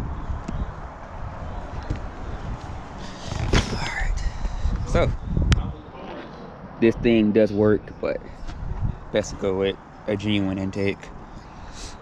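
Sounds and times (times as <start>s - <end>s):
low wind rumble: 0.0s - 12.0s.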